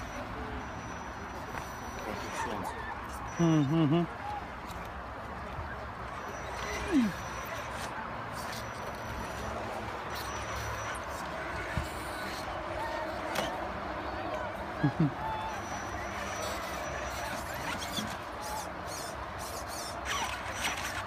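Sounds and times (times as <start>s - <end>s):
faint high motor whine: 0.0s - 21.0s.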